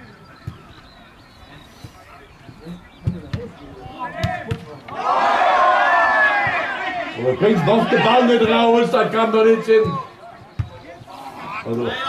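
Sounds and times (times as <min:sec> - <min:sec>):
people shouting: 0:04.0 - 0:10.2
football being kicked: 0:09.8 - 0:10.8.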